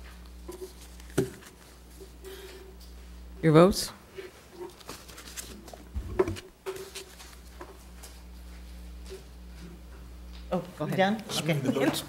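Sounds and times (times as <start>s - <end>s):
low room hum: 0.0s - 12.0s
paper rustling: 4.6s - 8.2s.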